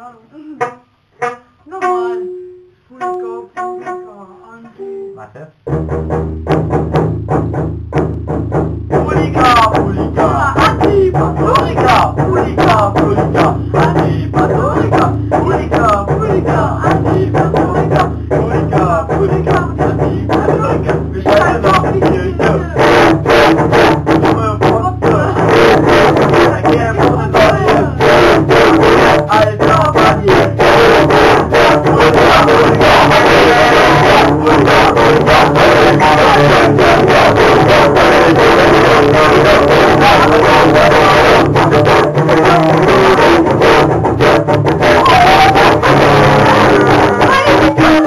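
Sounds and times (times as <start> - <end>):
strummed guitar: 0.6 - 48.0
screamed vocals: 44.8 - 48.0.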